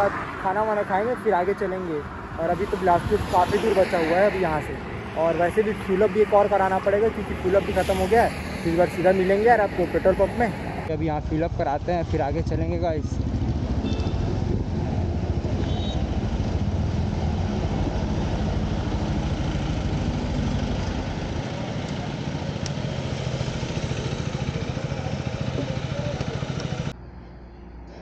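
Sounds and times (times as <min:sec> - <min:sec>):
motorcycle engine idling: 0:19.7 - 0:26.9.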